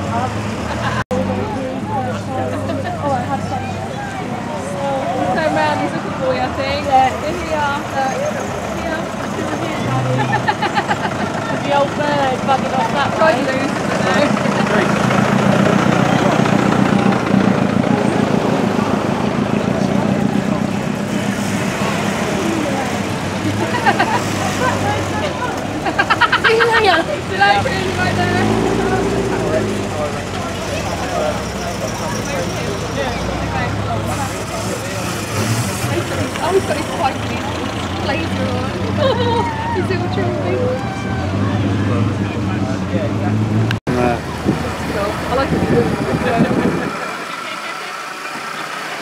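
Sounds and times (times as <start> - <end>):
cars driving slowly past: 0.0 - 49.0
spectators chatting: 0.0 - 49.0.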